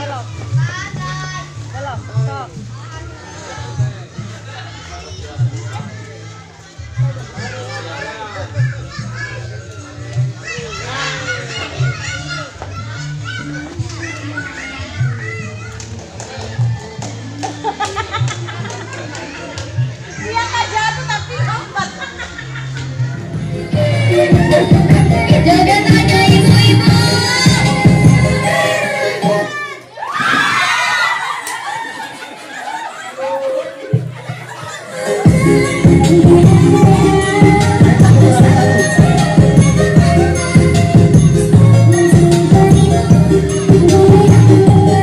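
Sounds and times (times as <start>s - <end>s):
children chattering and calling: 0.0s - 45.0s
crowd shouting and cheering: 22.5s - 45.0s
music with low bass pulse: 35.3s - 45.0s.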